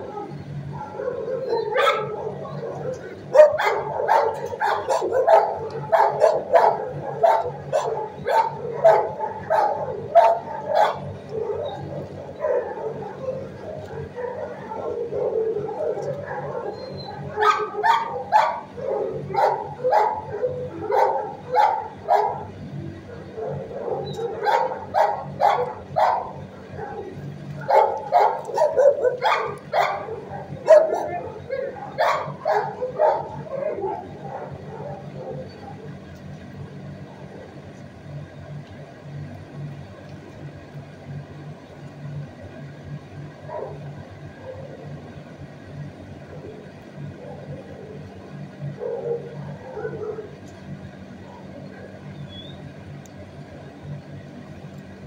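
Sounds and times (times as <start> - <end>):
dogs barking: 0.0 - 37.5, 43.4 - 45.0, 46.0 - 52.6
steady low hum: 0.0 - 55.0.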